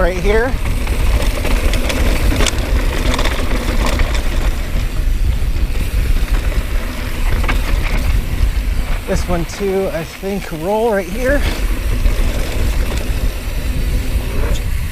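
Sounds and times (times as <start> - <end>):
bike clicks and rattles: 0.0 - 14.9
tyres rolling over gravel: 0.0 - 14.9
wind rumble on microphone: 0.0 - 14.9.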